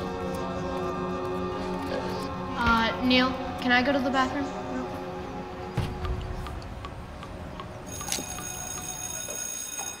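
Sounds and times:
high-pitched ringing tone: 7.9s - 10.0s.

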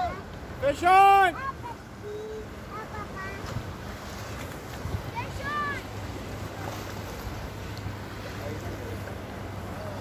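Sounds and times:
motorboat engine humming: 0.0s - 10.0s
water noise: 0.0s - 10.0s
wind: 0.0s - 10.0s.

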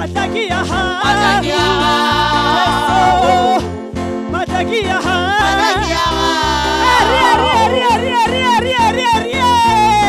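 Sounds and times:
instrumental backing with low beat: 0.6s - 10.0s
woman singing gospel lead: 1.0s - 3.6s, 5.4s - 8.2s.

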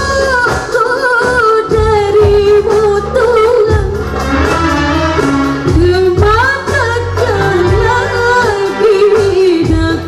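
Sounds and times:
keyboard: 0.0s - 10.0s
woman singing: 0.0s - 10.0s.

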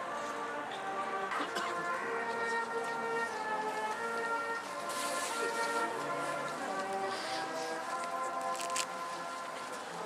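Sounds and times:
wind instruments holding chords: 0.0s - 10.0s.

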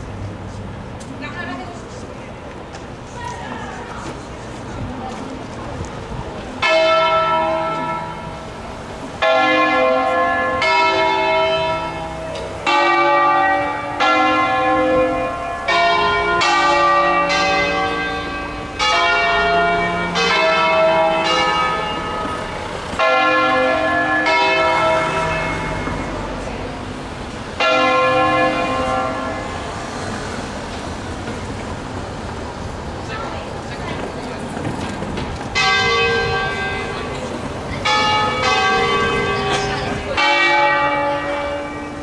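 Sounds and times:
church bells ringing: 6.6s - 30.7s, 35.5s - 42.0s.

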